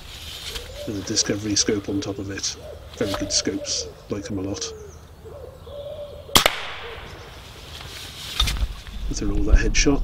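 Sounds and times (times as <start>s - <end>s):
pigeon cooing: 0.5s - 7.2s
air rifle shot crack: 6.3s - 7.3s.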